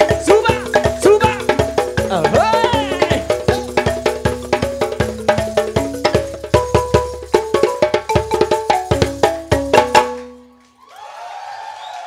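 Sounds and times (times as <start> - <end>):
percussion note ringing: 0.0 - 10.7
audience applauding: 10.7 - 12.0
audience cheering: 10.8 - 12.0.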